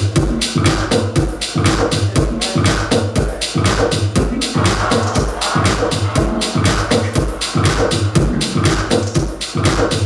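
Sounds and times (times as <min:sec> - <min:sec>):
bright hi-hats: 0:00.0 - 0:10.0
house music mix: 0:00.0 - 0:10.0
steady kick drum: 0:00.0 - 0:10.0.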